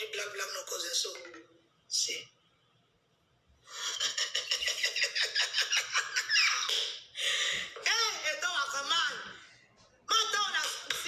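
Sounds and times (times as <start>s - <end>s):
woman laughing: 3.7s - 7.3s.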